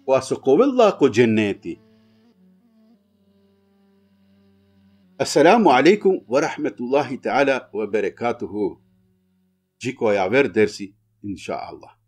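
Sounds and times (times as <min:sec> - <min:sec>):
faint background music held note: 0:00.0 - 0:12.0.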